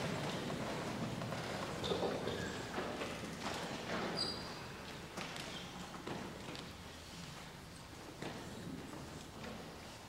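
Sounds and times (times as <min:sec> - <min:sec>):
short squeaks: 0:04.1 - 0:04.6.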